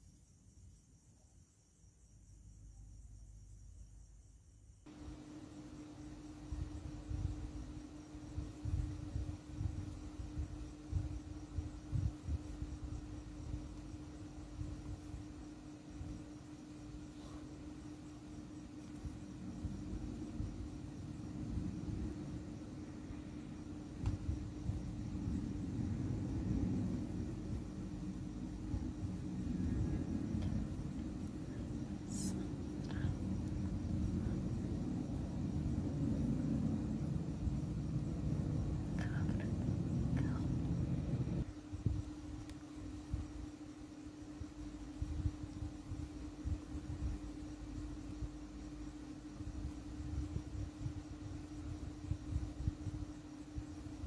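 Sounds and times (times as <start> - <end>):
steady low hum: 0.0 - 54.0
low bumps and rumble: 24.0 - 41.5.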